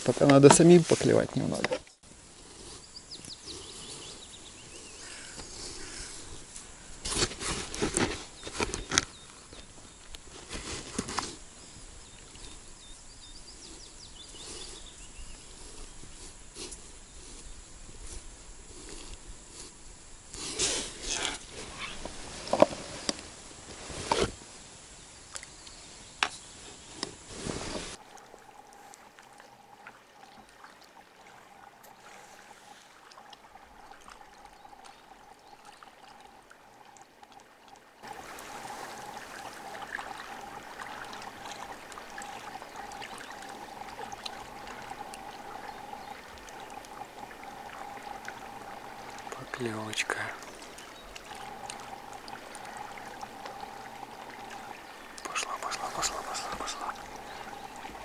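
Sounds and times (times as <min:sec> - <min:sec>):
outdoor background noise: 0:00.0 - 0:58.0
faint steady tone: 0:27.8 - 0:58.0.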